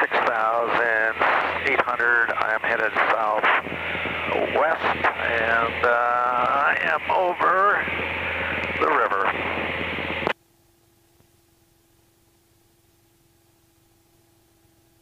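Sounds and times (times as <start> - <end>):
tinny radio voice transmission: 0.0 - 3.6, 4.2 - 7.9, 8.5 - 9.5
low steady hum: 0.0 - 15.0
faint steady tone: 9.9 - 15.0.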